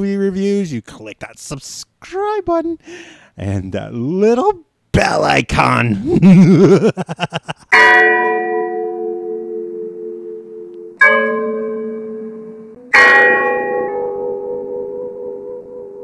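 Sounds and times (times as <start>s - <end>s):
deep bell ringing: 7.7s - 16.0s.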